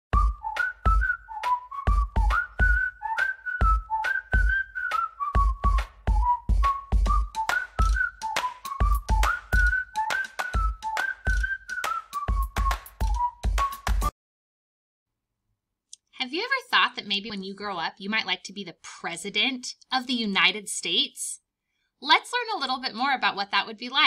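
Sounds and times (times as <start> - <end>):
whistled tune: 0.1 - 14.1
drum beat with clap hits: 0.2 - 14.1.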